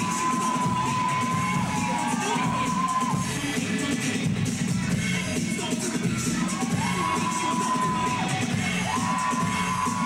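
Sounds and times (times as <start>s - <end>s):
high-pitched scream: 0.0s - 3.3s, 6.4s - 10.0s
audience cheering and screaming: 0.0s - 3.6s, 6.0s - 10.0s
dance track: 0.0s - 10.0s.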